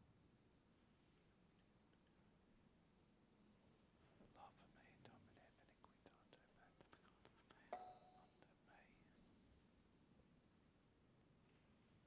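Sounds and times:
faint whispering: 4.2s - 9.7s
sharp clink: 7.7s - 8.4s.

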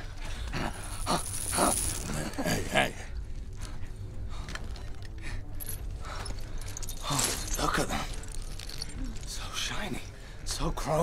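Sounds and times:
metal chain clinking: 0.6s - 2.5s, 4.5s - 10.1s.

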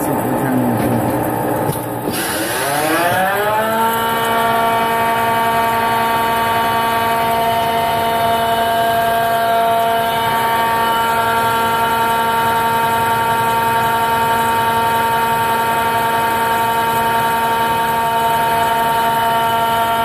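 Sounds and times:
lathe spindle whine: 0.0s - 20.0s.

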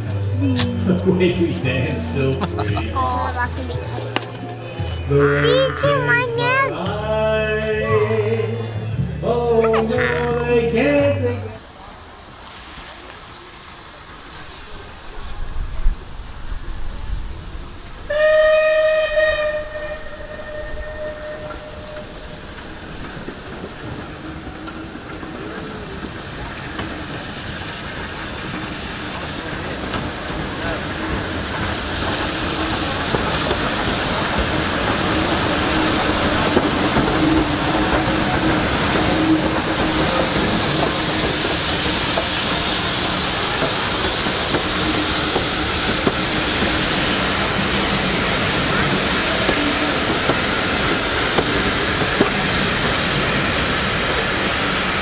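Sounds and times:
train approaching: 0.0s - 55.0s
steam hissing: 11.8s - 55.0s
steam locomotive whistle: 18.1s - 22.3s.

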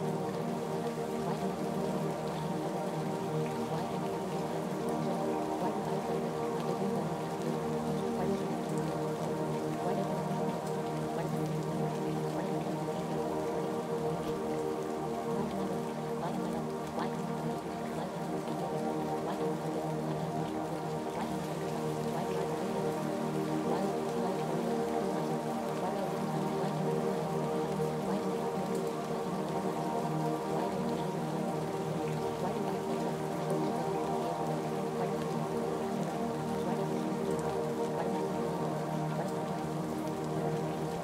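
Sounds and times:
steady rain: 0.0s - 41.0s.

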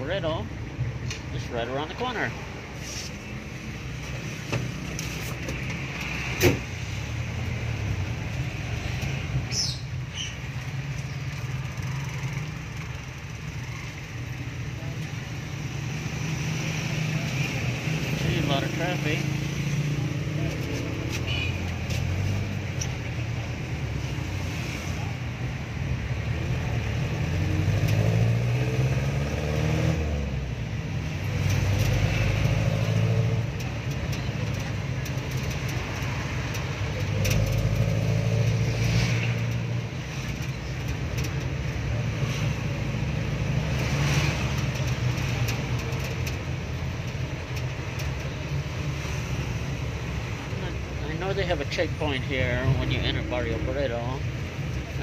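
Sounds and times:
road and traffic noise: 0.0s - 55.0s
vehicle engine revving: 15.2s - 50.6s.

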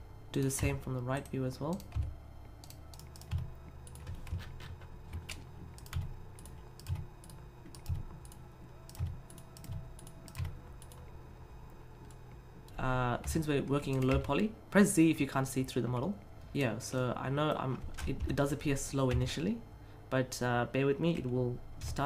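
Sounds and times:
faint low hum: 0.0s - 22.0s
keyboard and mouse clicking: 0.4s - 11.0s, 12.0s - 14.4s.

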